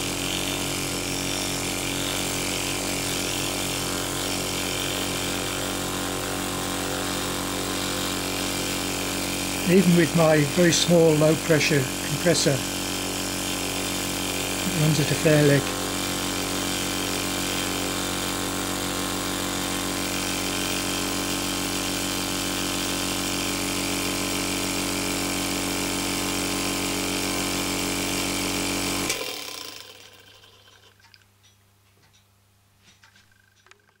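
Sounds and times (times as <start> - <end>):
model engine whirring: 6.9 - 23.4, 28.9 - 31.2.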